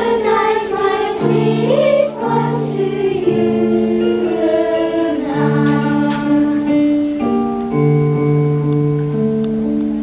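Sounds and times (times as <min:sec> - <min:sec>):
children's choir singing a lullaby: 0:00.0 - 0:07.4.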